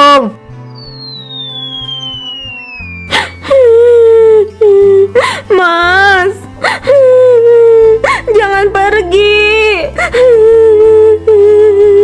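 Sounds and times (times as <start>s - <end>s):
background music: 0.0s - 12.0s
falling whistle: 0.6s - 4.2s.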